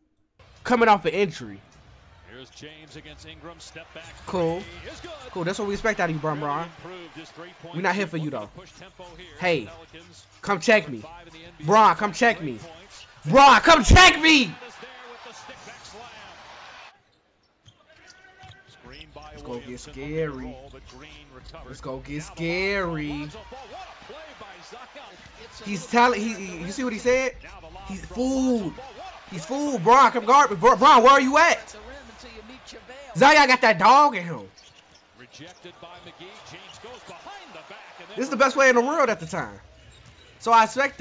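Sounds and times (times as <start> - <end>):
arena crowd noise: 0.4 - 17.1, 17.8 - 41.0
commentator talking: 0.6 - 1.7, 2.3 - 16.3, 18.2 - 34.5, 35.3 - 39.6, 40.4 - 41.0.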